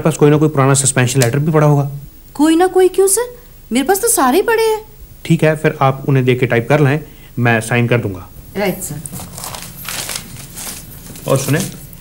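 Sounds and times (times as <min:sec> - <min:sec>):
paper rustling and crinkling: 0:09.0 - 0:11.9.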